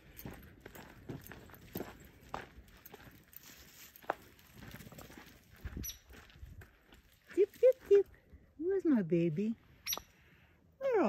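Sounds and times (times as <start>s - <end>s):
footsteps on dirt trail: 0.0s - 8.4s.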